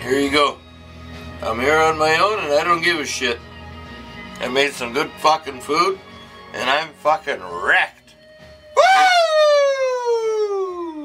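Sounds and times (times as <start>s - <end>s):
man calling with falling pitch: 8.8s - 11.0s.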